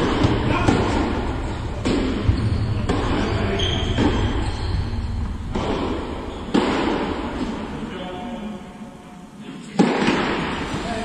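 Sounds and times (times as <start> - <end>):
tennis ball smack with echo: 5.5 - 7.6, 9.8 - 10.6.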